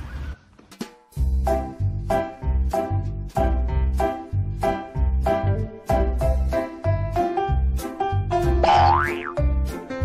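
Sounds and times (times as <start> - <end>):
upbeat background music: 1.1 - 10.0
cartoon upward glide effect: 8.6 - 9.4.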